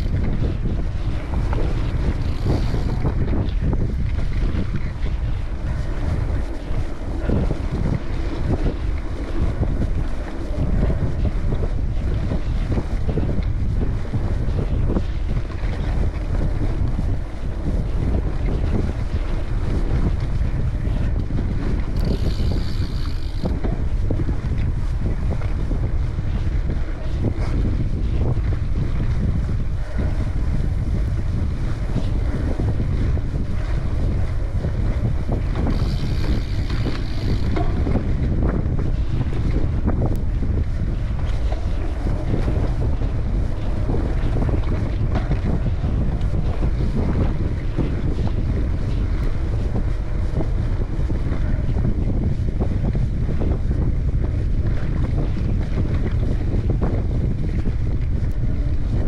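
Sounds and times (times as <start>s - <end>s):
bike tyres rolling on dirt: 0.0s - 59.0s
wind buffeting microphone: 0.0s - 59.0s.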